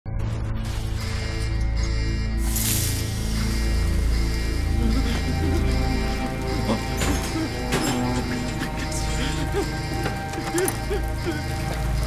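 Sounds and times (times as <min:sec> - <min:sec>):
tense drone music: 0:00.1 - 0:12.0.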